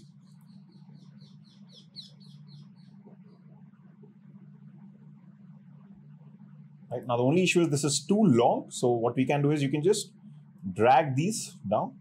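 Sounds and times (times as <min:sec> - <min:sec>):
bird chirping rapidly: 0:00.0 - 0:03.5
steady low hum: 0:00.0 - 0:12.0.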